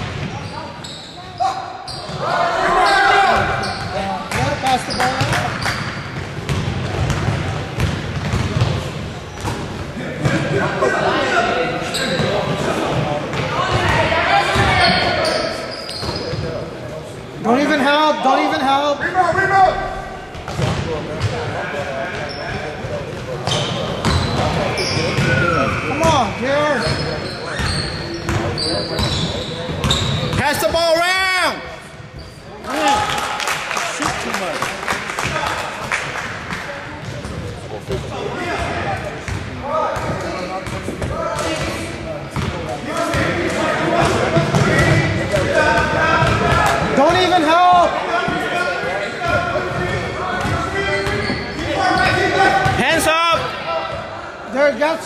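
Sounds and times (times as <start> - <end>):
sneakers squeaking: 0.0 - 10.5, 11.7 - 17.1, 19.4 - 30.8, 31.6 - 33.1, 36.4 - 54.1
crowd chatter and shouting: 0.0 - 55.0
basketball bouncing on hardwood: 6.5 - 8.7.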